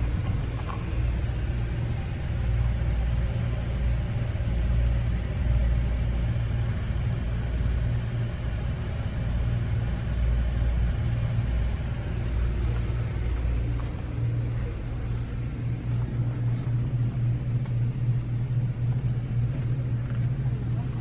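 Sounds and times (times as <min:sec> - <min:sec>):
pulsing low rumble: 0:00.0 - 0:21.0.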